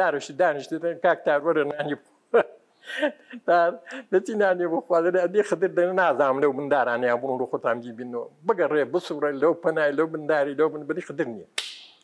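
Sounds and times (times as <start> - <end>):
man speaking: 0.0 - 2.5, 3.3 - 11.6.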